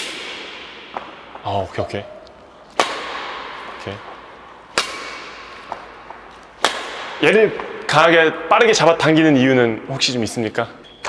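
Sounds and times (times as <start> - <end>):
racket striking shuttlecock: 0.0 - 1.5, 2.1 - 7.9.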